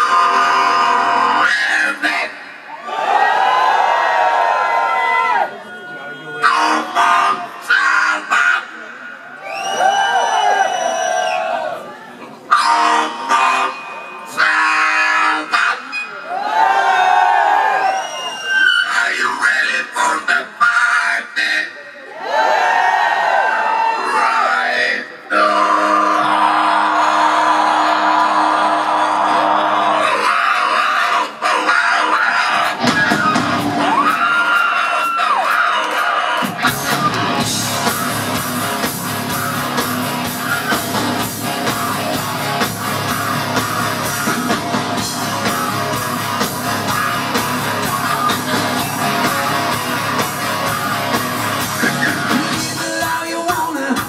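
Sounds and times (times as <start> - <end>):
singer's wordless vocal calls: 0.0 - 4.0, 5.4 - 11.6, 23.4 - 54.0
crowd shouting: 0.0 - 18.7, 22.0 - 53.0
rock band playing: 5.0 - 8.9, 12.5 - 16.1, 25.4 - 54.0.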